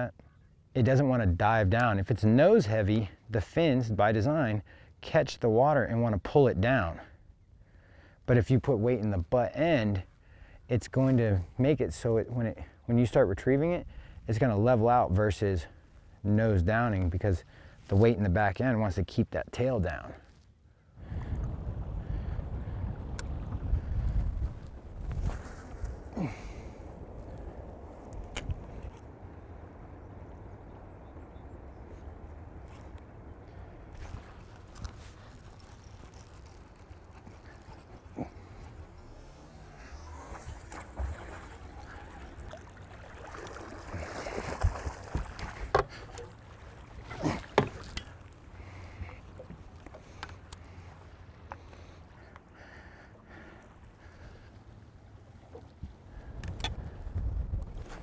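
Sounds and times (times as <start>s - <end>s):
wind rumble: 21.0s - 47.1s, 53.8s - 58.0s
water lapping: 31.7s - 58.0s
water splashing: 32.8s - 52.0s.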